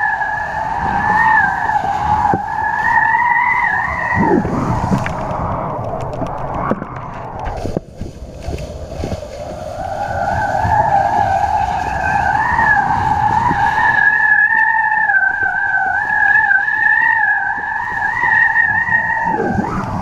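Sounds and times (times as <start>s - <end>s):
wind rumble on microphone: 0.0s - 20.0s
wind whistling on kite lines: 0.0s - 20.0s.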